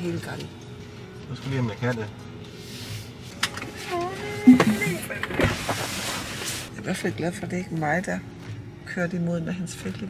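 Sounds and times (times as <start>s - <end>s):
wordless humming voice: 3.9s - 5.2s.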